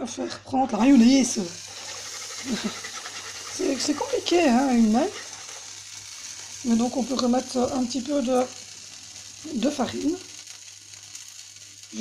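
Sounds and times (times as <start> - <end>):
sauce sizzling in a wok: 0.7 - 12.0
whisking sauce: 1.1 - 5.8.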